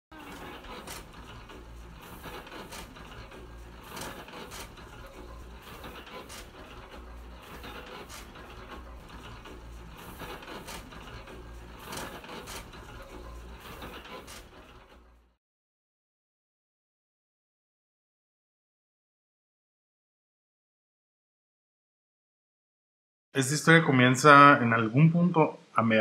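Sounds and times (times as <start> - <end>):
printing press clattering: 0.1 - 15.0.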